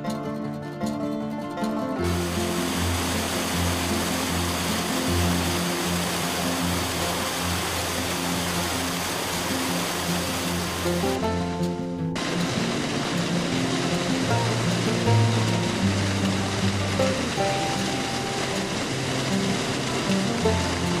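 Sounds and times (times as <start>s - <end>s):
music with sustained low notes: 0.0s - 21.0s
water rushing over weir: 2.0s - 11.4s, 12.2s - 21.0s.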